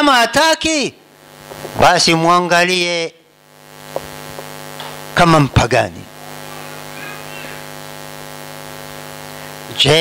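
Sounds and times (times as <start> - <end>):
voice: 0.0 - 1.0, 1.8 - 3.2, 5.2 - 6.1, 9.7 - 10.0
electrical mains hum: 0.0 - 10.0.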